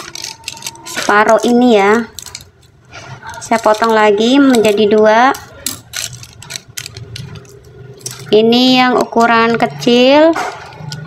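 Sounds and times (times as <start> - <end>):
foil crinkling: 0.0 - 4.9, 5.5 - 8.3
scissors cutting foil sachet: 0.0 - 8.3.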